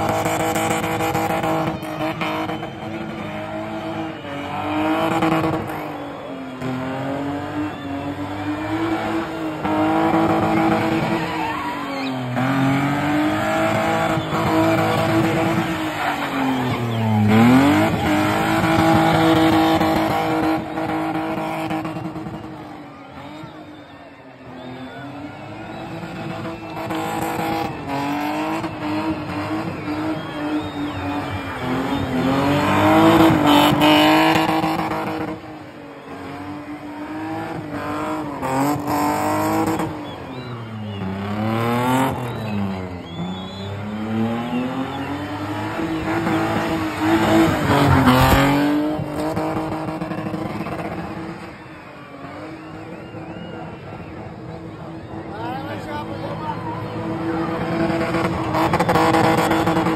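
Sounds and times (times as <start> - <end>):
car engine revving high: 0.0 - 59.9.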